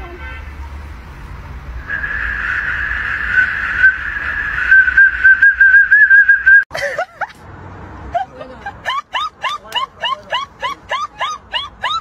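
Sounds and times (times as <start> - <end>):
high-pitched metal whistle: 1.8 - 6.6.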